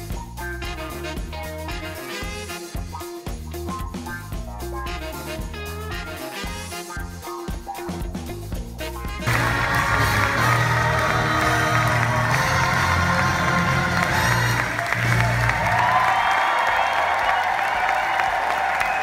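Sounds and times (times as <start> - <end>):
loud stage music: 0.0 - 19.0
audience clapping and cheering: 9.2 - 19.0.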